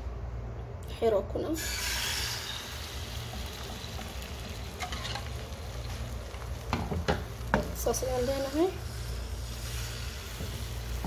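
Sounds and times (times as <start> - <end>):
egg sizzling in a frying pan: 1.6 - 11.0.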